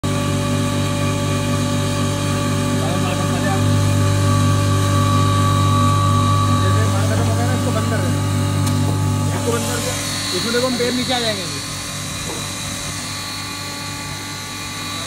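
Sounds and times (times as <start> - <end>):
flour mill humming: 0.0 - 15.0.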